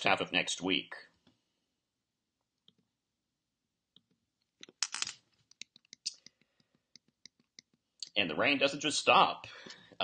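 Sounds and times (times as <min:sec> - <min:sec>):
computer mouse clicks: 0:05.5 - 0:07.8.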